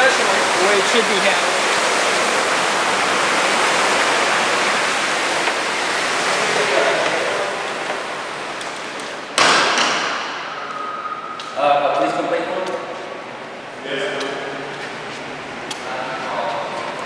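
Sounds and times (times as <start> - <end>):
fountain water falling into pool: 0.0 - 14.7
sharp knock with echo: 9.4 - 11.3.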